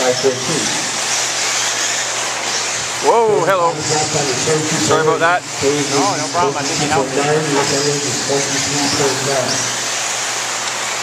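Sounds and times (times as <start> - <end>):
rc buggies racing: 0.0 - 11.0.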